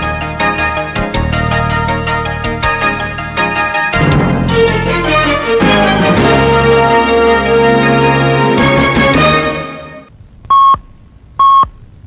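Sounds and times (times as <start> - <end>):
radio time signal beeps: 10.5 - 10.8, 11.4 - 11.7.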